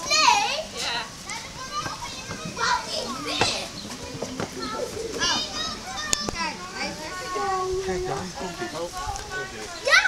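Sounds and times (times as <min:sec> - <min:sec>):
children chattering and calling: 0:00.0 - 0:10.0.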